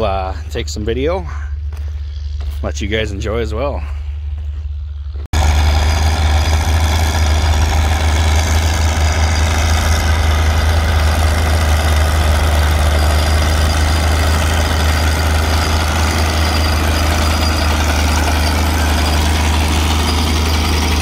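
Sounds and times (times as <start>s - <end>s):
tractor engine running under load: 4.2s - 21.0s.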